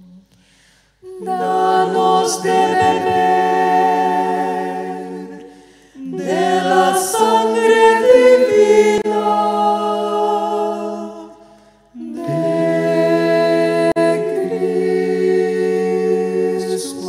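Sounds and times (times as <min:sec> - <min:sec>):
a cappella choir singing: 0:00.0 - 0:17.0.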